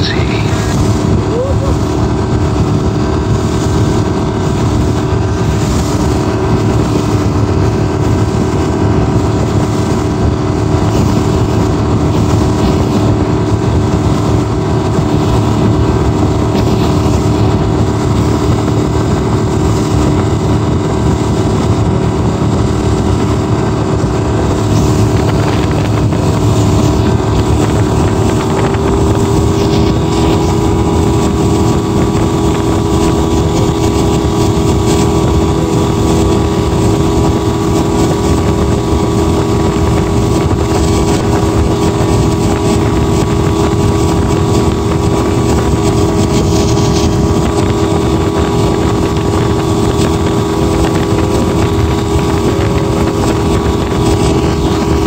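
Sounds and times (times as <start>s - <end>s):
outboard motor running: 0.0s - 55.0s.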